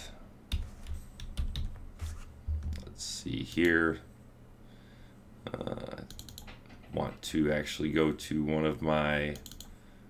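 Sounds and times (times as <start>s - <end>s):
keyboard and mouse clicking: 0.5s - 1.7s, 6.0s - 6.7s, 9.3s - 9.7s.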